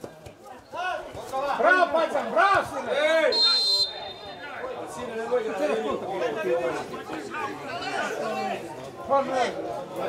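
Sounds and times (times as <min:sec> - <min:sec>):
voices talking and calling out: 0:00.0 - 0:10.0.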